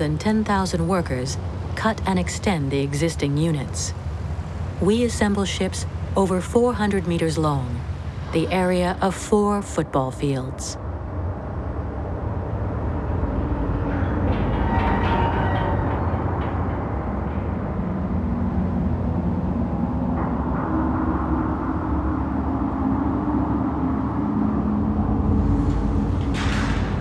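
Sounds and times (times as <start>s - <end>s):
low droning tones: 0.0s - 27.0s
low rumble: 10.8s - 27.0s.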